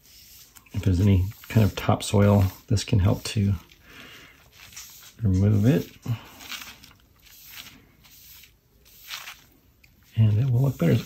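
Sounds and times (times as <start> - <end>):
cleaning pad swishing on paper: 0.0 - 3.8, 4.4 - 11.0.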